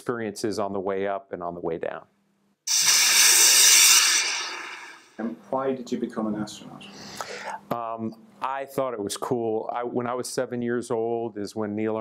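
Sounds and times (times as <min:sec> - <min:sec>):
rushing hiss transition effect: 0:02.7 - 0:05.2.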